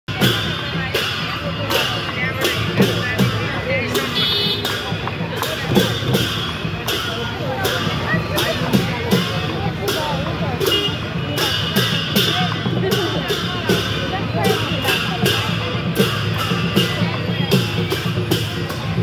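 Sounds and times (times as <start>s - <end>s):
barrel drums beaten in rhythm: 0.1s - 19.0s
street crowd chatter: 0.1s - 19.0s.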